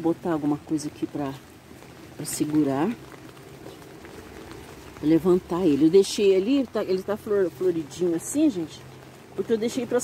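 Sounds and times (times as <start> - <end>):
light rain pattering: 0.0 - 10.0.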